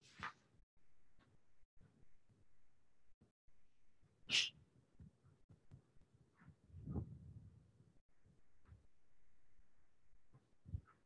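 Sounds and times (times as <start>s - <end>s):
person breathy burst: 4.3s - 4.5s.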